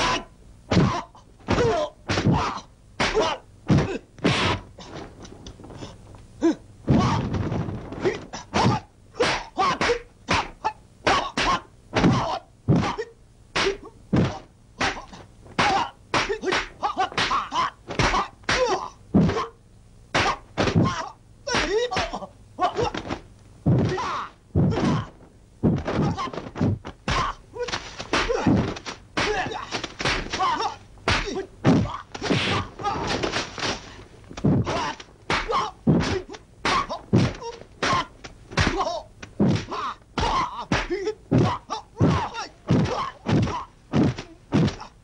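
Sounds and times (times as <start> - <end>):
fighters shouting and grunting: 0.0 - 4.6, 6.4 - 7.4, 8.0 - 19.5, 20.2 - 23.2, 23.8 - 45.0
punch and kick impacts: 0.7 - 4.6, 6.9 - 10.5, 22.8 - 44.9.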